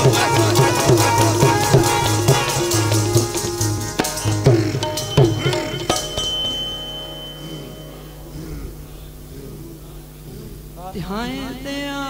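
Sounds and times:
harmonium chord: 0.0s - 9.2s
thin high steady tone: 5.0s - 10.4s.

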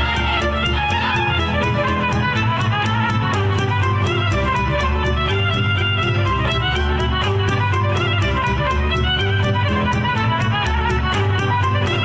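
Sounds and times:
folk dance music: 0.0s - 12.0s.

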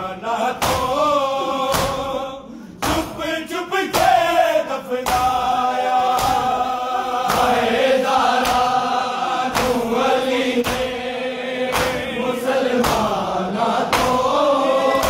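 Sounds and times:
men chanting a lament in unison: 0.0s - 15.0s
hands slapping chests: 0.6s - 1.0s, 1.7s - 2.1s, 2.8s - 3.2s, 5.0s - 8.9s, 9.5s - 11.0s, 11.6s - 15.0s.

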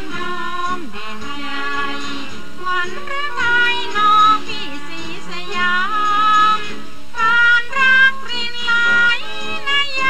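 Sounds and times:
instrumental accompaniment: 0.0s - 10.0s
woman singing long held notes: 0.0s - 10.0s.

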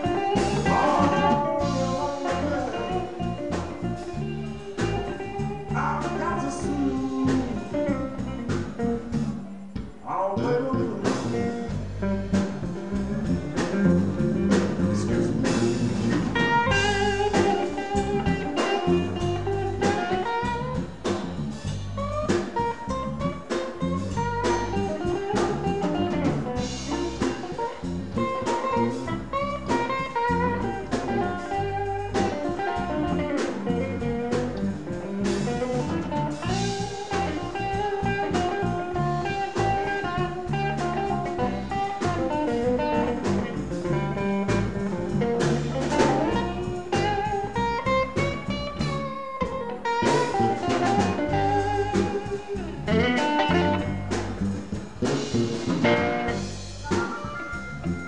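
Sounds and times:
bass: 0.0s - 58.0s
drum kit: 0.0s - 58.0s
lead guitar with bending notes: 0.0s - 58.0s.

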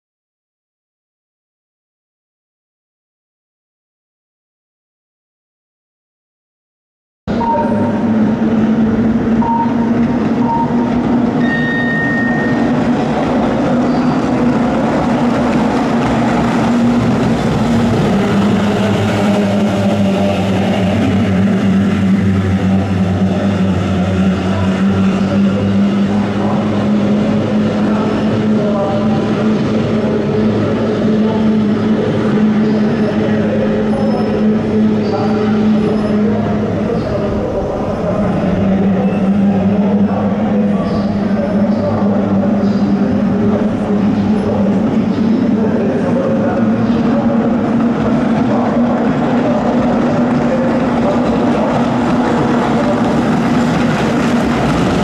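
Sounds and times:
brief high tone: 7.3s - 8.1s, 9.4s - 12.8s.

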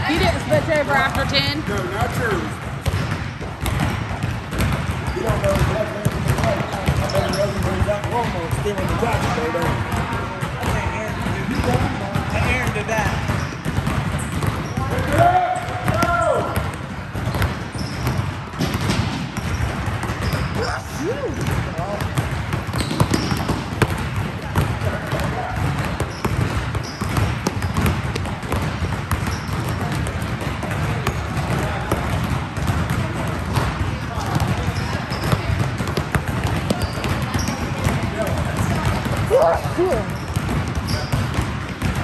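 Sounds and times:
background chatter: 0.0s - 18.6s, 20.4s - 42.0s
basketballs bouncing on gym floor: 0.0s - 42.0s
crowd noise: 0.0s - 42.0s.

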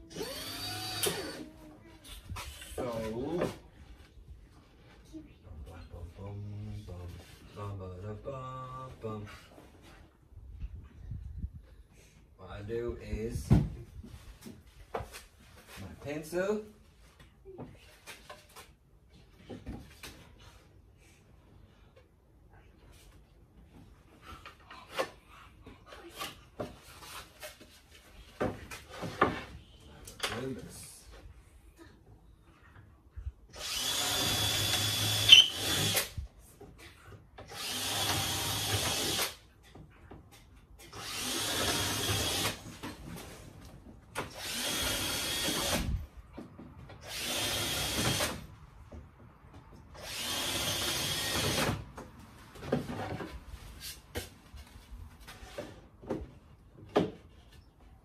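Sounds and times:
power drill boring into wood: 0.0s - 1.4s, 33.6s - 36.2s, 37.5s - 39.4s, 40.9s - 42.6s, 44.3s - 45.9s, 47.0s - 48.4s, 50.0s - 51.8s.

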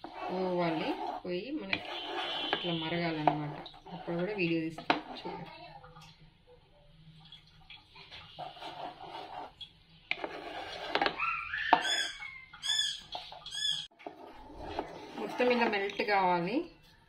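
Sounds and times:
spatula stirring butter in pan: 0.0s - 5.4s, 8.0s - 11.2s, 12.8s - 16.2s.

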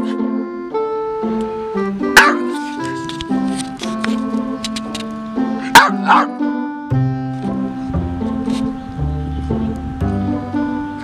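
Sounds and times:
background music with sustained notes: 0.0s - 11.0s
dog barking: 2.2s - 2.5s, 5.7s - 6.4s.

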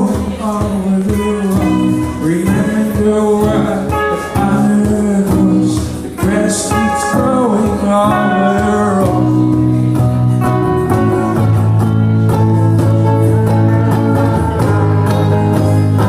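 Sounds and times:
electric guitar: 0.0s - 16.0s
person singing slow melody: 0.0s - 16.0s
second guitar: 0.0s - 16.0s.

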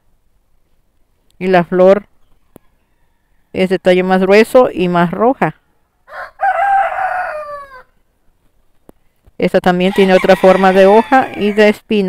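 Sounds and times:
rooster crowing: 2.6s - 3.6s, 5.8s - 8.0s, 9.9s - 11.7s.

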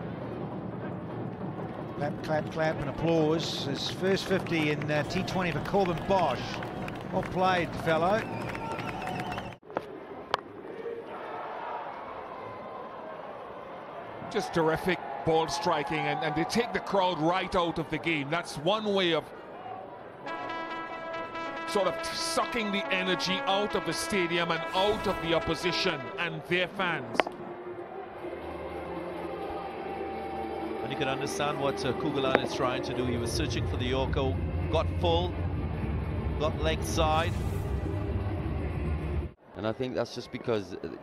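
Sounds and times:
stadium background noise: 0.0s - 37.4s, 39.4s - 41.0s
bat cracking against ball: 27.1s - 27.4s.

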